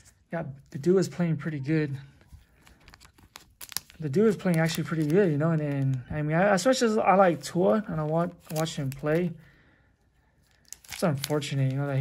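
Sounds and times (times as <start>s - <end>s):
cellophane wrapper rustling and tearing: 2.4s - 6.0s, 7.4s - 9.4s, 10.4s - 12.0s.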